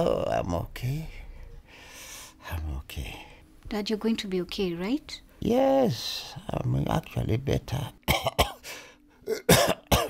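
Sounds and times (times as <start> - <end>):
elderly man coughing: 8.1 - 8.6, 9.2 - 10.0.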